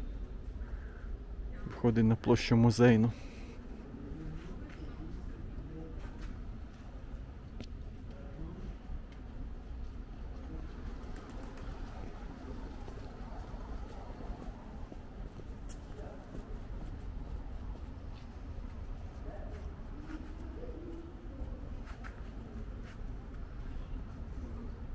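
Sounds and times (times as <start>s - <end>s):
low city rumble: 0.0s - 24.9s.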